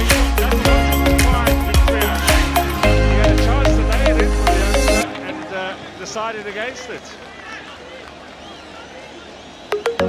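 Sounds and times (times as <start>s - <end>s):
music: 0.0s - 5.8s, 9.8s - 10.0s
distant voices on football pitch: 5.0s - 9.9s.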